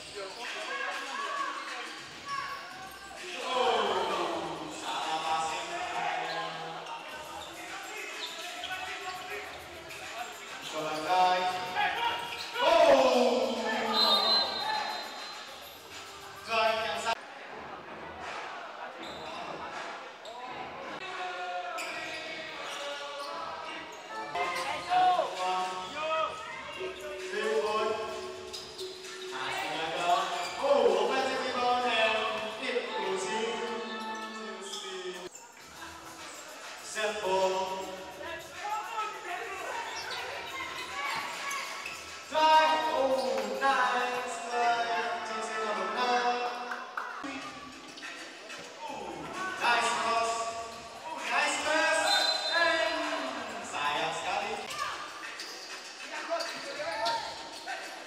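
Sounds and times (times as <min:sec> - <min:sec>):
voices calling and chanting: 0:00.0 - 0:17.4, 0:20.2 - 0:58.0
shoe squeaks: 0:05.4 - 0:17.1, 0:21.6 - 0:46.2, 0:47.2 - 0:58.0.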